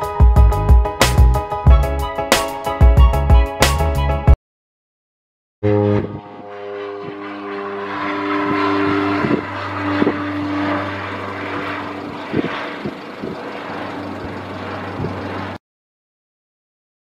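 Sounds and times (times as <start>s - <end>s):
propeller aircraft drone: 5.6s - 15.6s.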